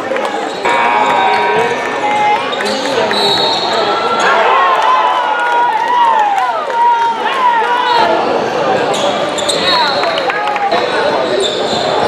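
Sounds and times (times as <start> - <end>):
voices echoing in a hall: 0.0 - 12.0
sneakers squeaking: 8.9 - 10.0, 11.3 - 12.0.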